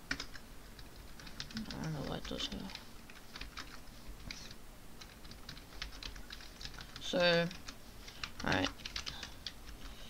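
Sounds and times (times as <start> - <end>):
keyboard typing: 0.1 - 10.0.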